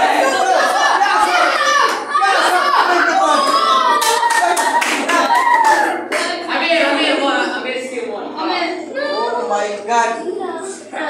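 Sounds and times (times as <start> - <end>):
children calling out: 0.0 - 6.1
hand claps: 3.9 - 6.5.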